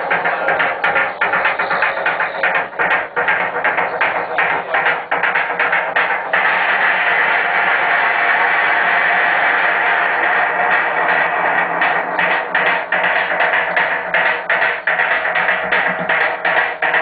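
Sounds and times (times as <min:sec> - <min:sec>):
steady drum beat: 0:00.0 - 0:17.0
synthesizer and guitar wash: 0:00.0 - 0:17.0.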